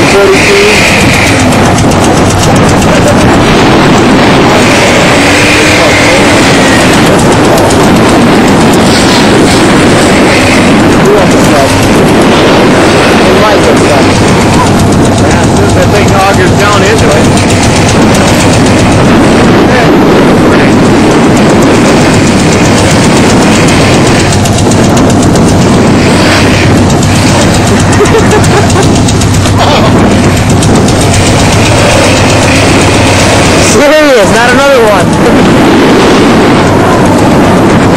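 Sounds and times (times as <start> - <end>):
truck engine revving high: 0.0 - 37.9
wheels spinning in wet snow: 0.0 - 37.9.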